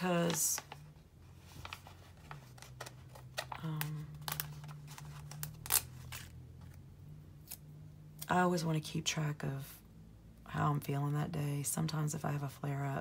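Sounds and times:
paper sticker sheets crinkling: 0.0s - 6.8s.

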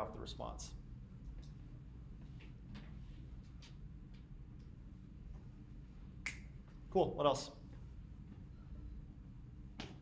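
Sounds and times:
sharp snap: 6.2s - 6.5s.

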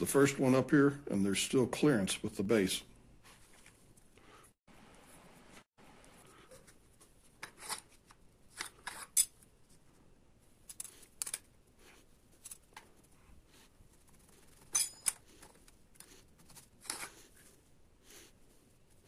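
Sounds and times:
metal fins clinking on cylinder: 14.7s - 15.2s.

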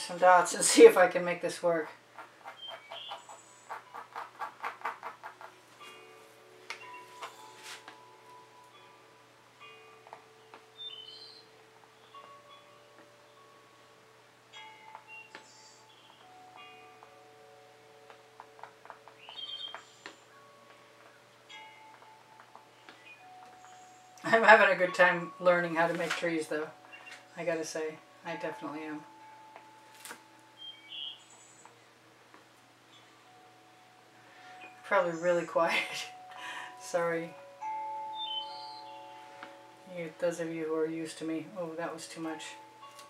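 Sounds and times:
paintbrush tapping canvas: 2.1s - 5.6s
slow chime-like music: 5.6s - 43.0s.

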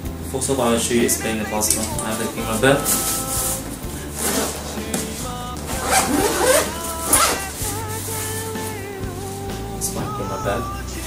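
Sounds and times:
background music with held notes: 0.0s - 11.0s
zipper rasping open: 1.7s - 8.7s.

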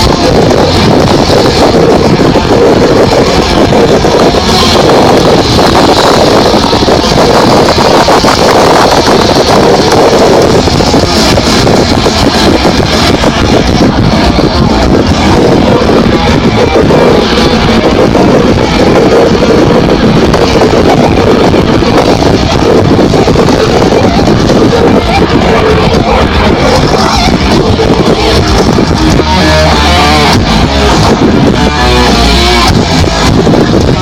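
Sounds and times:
distorted death metal band: 0.0s - 34.0s.

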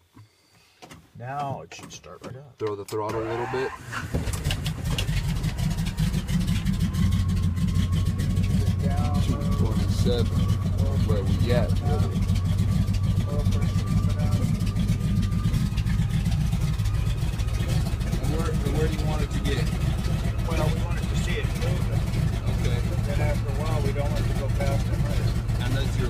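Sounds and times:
radial aircraft engine droning: 4.2s - 26.0s.

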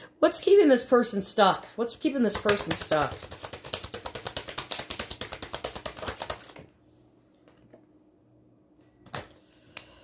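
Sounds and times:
cards being shuffled: 2.4s - 6.7s.

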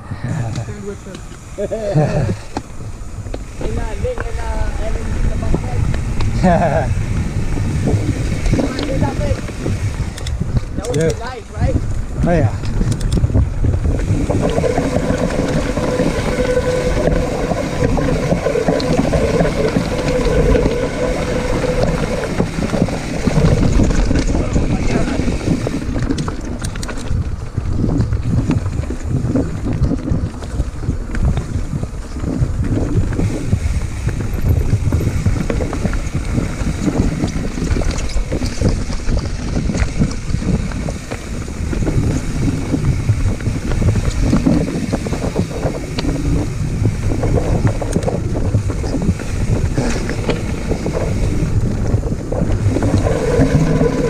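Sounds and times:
bike tyres rumbling: 0.0s - 54.0s
wind buffeting microphone: 0.0s - 54.0s
bike rattling and knocking: 0.6s - 54.0s.

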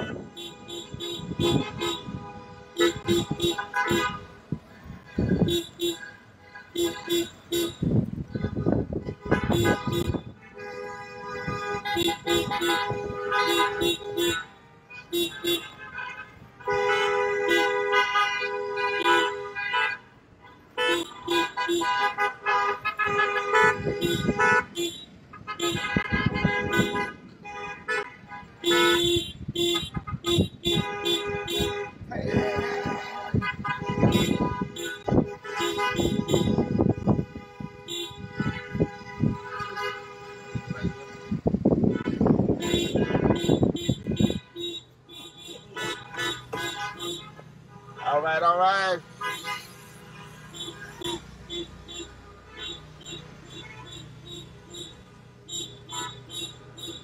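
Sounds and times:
car horns honking: 0.0s - 57.0s.

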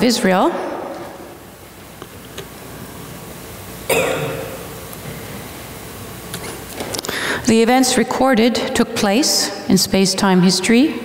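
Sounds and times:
woman clearing her throat: 3.9s - 4.7s.

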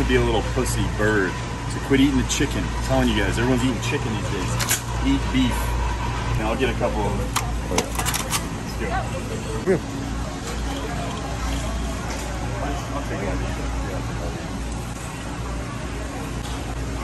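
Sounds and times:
faint indistinct voices: 0.0s - 17.0s
low hum of store interior: 0.0s - 17.0s.

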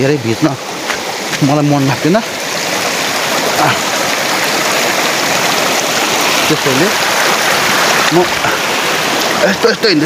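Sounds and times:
mountain stream rushing: 0.0s - 10.0s.

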